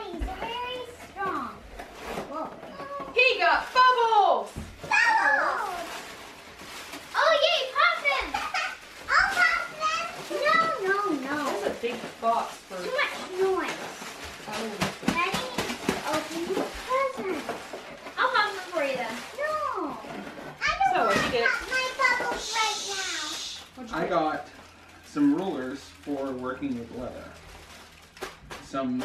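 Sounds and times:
children talking and exclaiming: 0.0s - 3.2s, 4.8s - 6.0s, 7.1s - 11.7s, 15.0s - 23.7s
plastic packaging crinkling: 0.0s - 29.0s.

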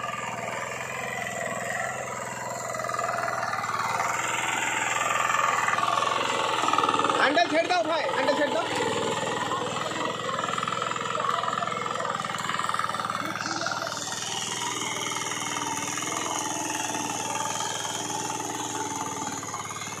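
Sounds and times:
small engine idling: 0.0s - 20.0s.

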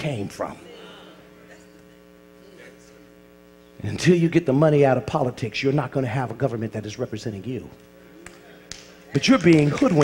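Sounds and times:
man preaching: 0.0s - 0.7s, 3.8s - 7.8s, 9.2s - 10.0s
low electrical hum: 0.0s - 10.0s.

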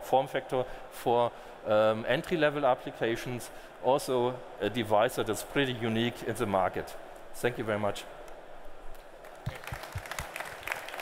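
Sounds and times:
audience applauding: 9.2s - 11.0s.

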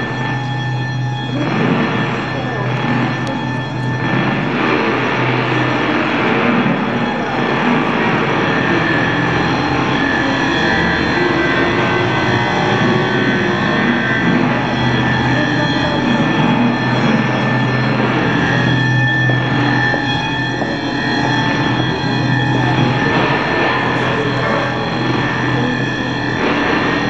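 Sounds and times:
processed electric guitar noise: 0.0s - 27.0s
steady low hum: 0.0s - 27.0s.

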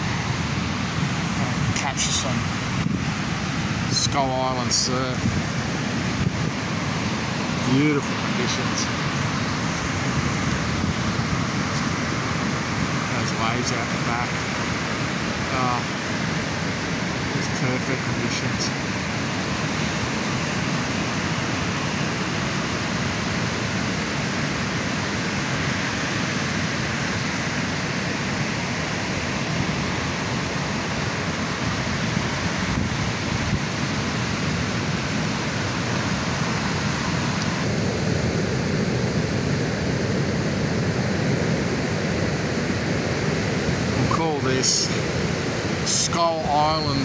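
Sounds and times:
wind noise on microphone: 0.0s - 45.9s
ocean waves breaking: 0.0s - 47.0s.

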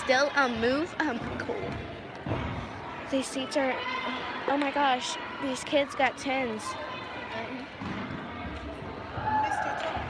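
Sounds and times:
indistinct crowd voices: 0.0s - 10.0s.

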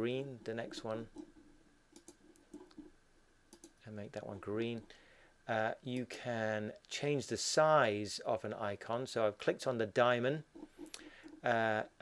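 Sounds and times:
computer mouse clicks: 1.9s - 2.9s, 3.5s - 3.8s.

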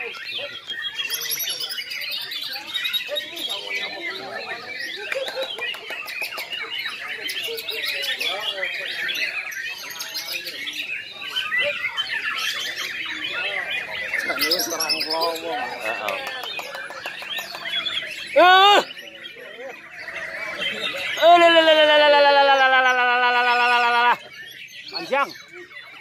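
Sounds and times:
many birds singing: 0.0s - 26.0s
person shouting: 18.4s - 18.8s.

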